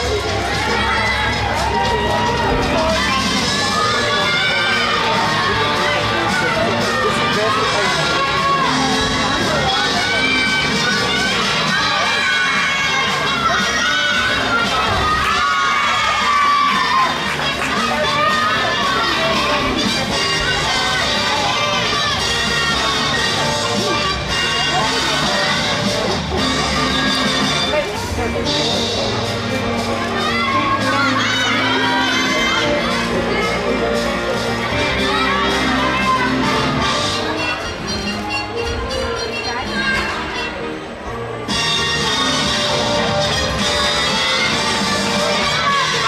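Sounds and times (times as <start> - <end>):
girls shouting and cheering: 0.0 - 26.0, 30.0 - 38.9, 42.0 - 46.0
gymnastics music playing: 0.0 - 46.0.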